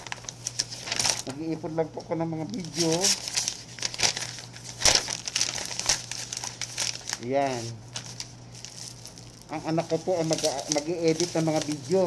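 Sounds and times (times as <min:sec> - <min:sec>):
wrapping material crinkling: 0:00.0 - 0:01.6, 0:02.3 - 0:12.0.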